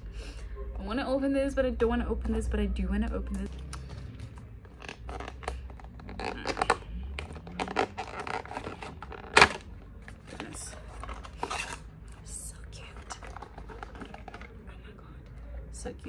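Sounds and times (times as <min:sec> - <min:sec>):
packaging tearing and crinkling: 0:04.7 - 0:11.9, 0:13.1 - 0:14.6.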